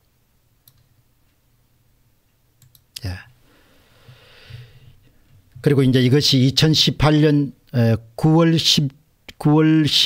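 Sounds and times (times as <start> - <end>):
computer mouse clicks: 0.6 - 1.0, 2.6 - 3.1.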